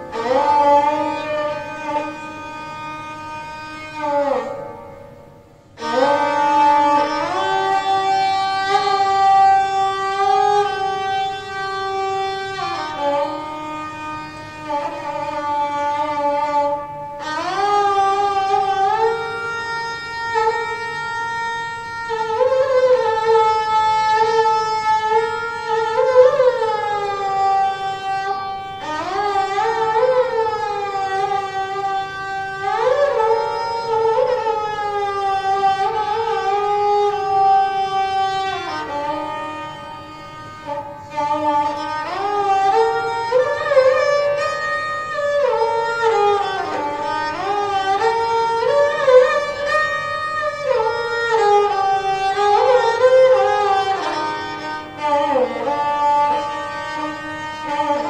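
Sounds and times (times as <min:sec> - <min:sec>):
bowed sarangi melody: 0:00.0 - 0:58.0.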